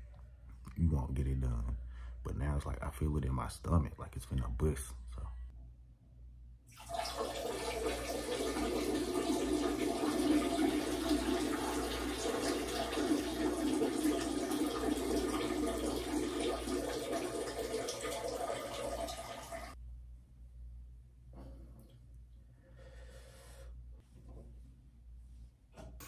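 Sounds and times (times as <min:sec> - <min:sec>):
urine stream splashing into toilet: 0:06.7 - 0:19.8.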